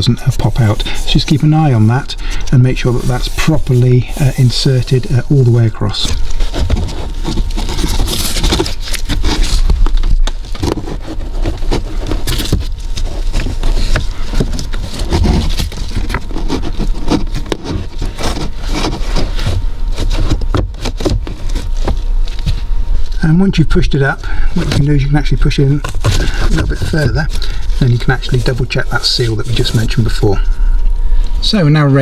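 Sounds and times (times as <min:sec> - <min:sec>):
filter scraping against plastic: 0:00.0 - 0:30.7
steady low hum: 0:00.0 - 0:32.0.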